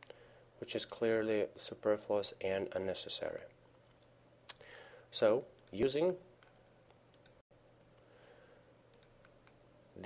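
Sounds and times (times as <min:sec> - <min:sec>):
low electrical hum: 0:00.0 - 0:10.0
computer mouse clicks: 0:05.6 - 0:07.4, 0:08.9 - 0:09.6.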